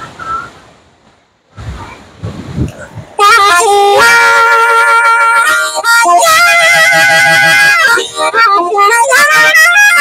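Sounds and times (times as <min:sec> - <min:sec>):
wind gusting on microphone: 0:00.0 - 0:05.2
surf: 0:00.0 - 0:10.0.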